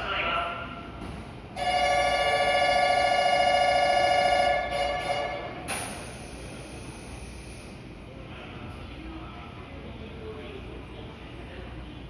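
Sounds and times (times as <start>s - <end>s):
electric departure bell ringing: 1.6s - 5.6s
short hiss of air: 5.7s - 7.8s.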